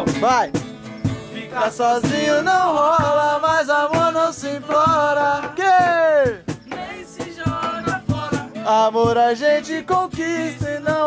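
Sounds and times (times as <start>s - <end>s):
acoustic guitar strumming: 0.0s - 11.0s
man singing: 1.2s - 11.0s.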